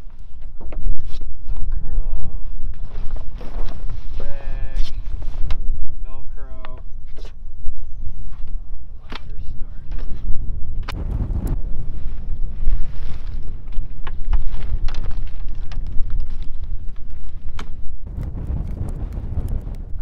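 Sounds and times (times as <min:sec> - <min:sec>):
wind buffeting microphone: 0:01.6 - 0:20.0.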